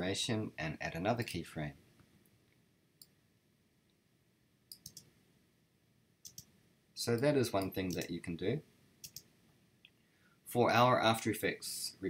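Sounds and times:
computer mouse clicks: 4.7s - 5.1s, 6.2s - 6.5s, 7.2s - 8.1s, 9.0s - 9.3s.

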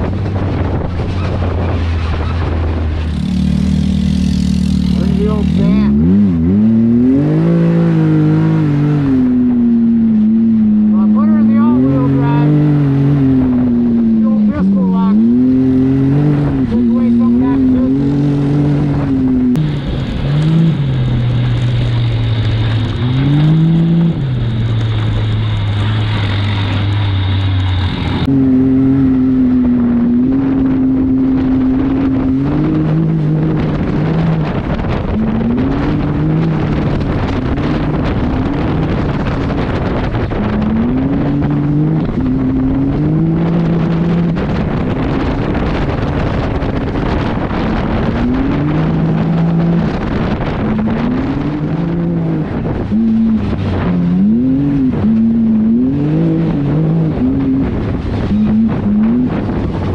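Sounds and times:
engine revving: 0.0s - 59.9s
tyre and chassis noise: 0.0s - 59.9s.

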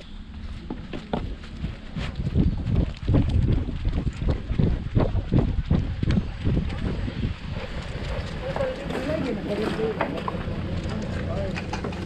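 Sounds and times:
steady low rumble: 0.0s - 12.0s
distant people talking: 6.2s - 12.0s.

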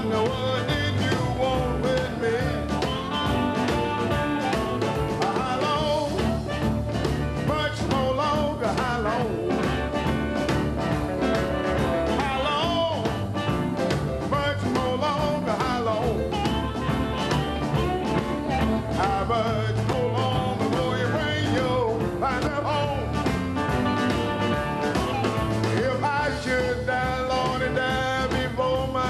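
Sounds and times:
lead guitar bent notes: 0.0s - 28.7s
electric blues band playing: 0.0s - 29.0s.

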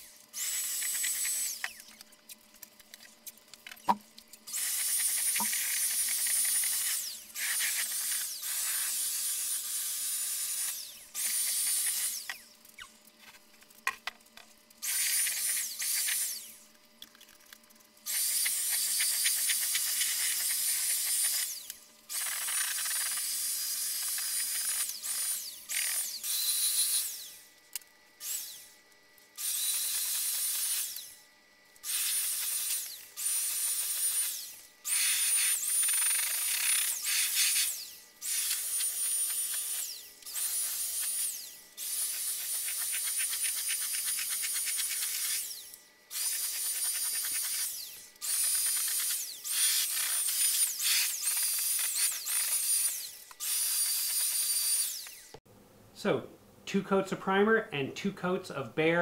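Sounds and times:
paint sprayer motor whine: 0.0s - 55.4s.

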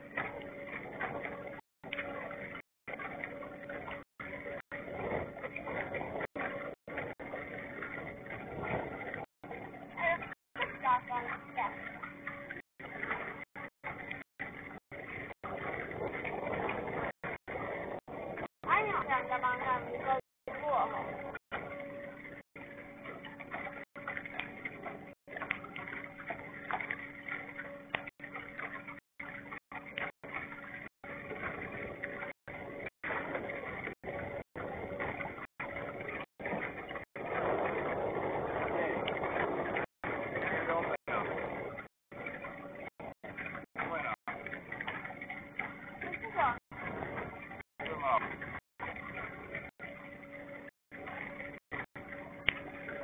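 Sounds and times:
steady low hum: 0.0s - 53.0s
water noise: 0.0s - 53.0s
wind: 0.0s - 53.0s.

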